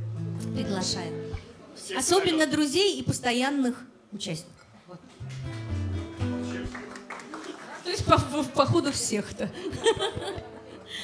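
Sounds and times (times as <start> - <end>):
acoustic guitar low notes: 0.0 - 1.8, 5.2 - 6.9, 9.7 - 11.0.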